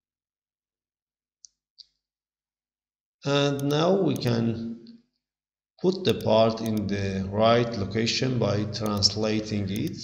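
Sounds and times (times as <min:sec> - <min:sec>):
computer mouse clicks: 0:03.6 - 0:04.4, 0:05.9 - 0:06.9, 0:08.8 - 0:09.1, 0:09.7 - 0:10.0.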